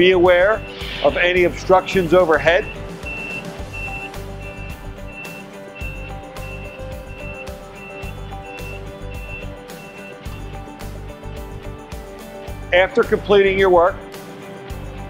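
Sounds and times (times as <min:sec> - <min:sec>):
background music: 0:00.0 - 0:15.0
lift alarm beeping: 0:00.5 - 0:10.5.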